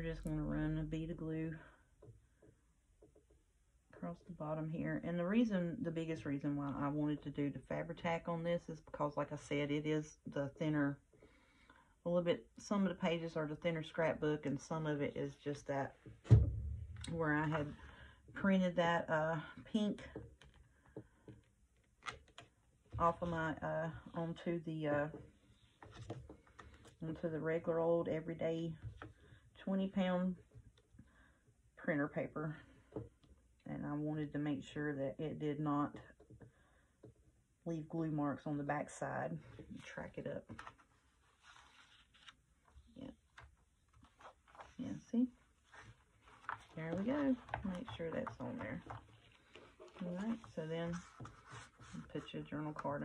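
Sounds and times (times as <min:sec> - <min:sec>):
paper rustling: 0:40.5 - 0:44.8, 0:45.7 - 0:52.3.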